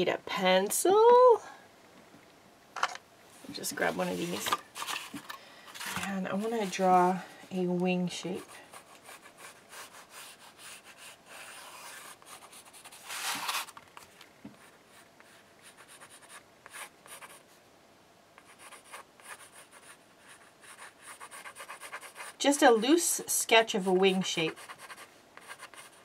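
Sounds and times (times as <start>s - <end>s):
pencil sketching on cardboard: 8.2s - 13.4s, 18.4s - 26.0s
pencil scrape: 8.4s - 13.7s, 18.4s - 23.1s, 23.8s - 26.0s.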